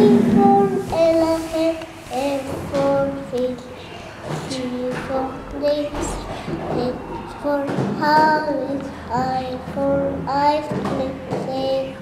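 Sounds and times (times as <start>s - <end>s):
girl chanting sing-song: 0.0s - 12.0s.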